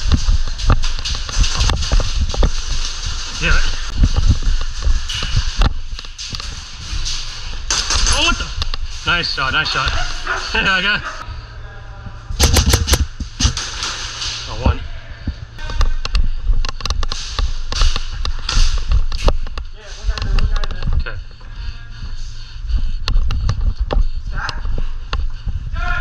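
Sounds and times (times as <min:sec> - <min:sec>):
airsoft rifle bursts: 0:12.4 - 0:13.1.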